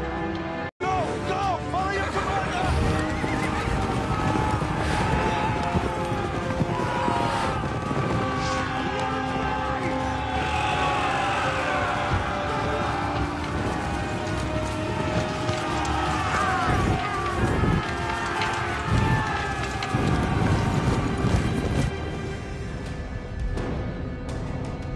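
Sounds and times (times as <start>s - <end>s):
orchestral music: 0.0s - 24.9s
men shouting: 1.0s - 21.4s
hooves pounding: 1.8s - 22.2s
horses neighing: 1.9s - 21.5s.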